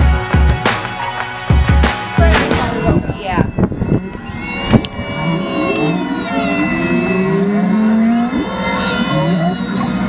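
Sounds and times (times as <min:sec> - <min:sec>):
whale song tones: 0:02.4 - 0:10.0.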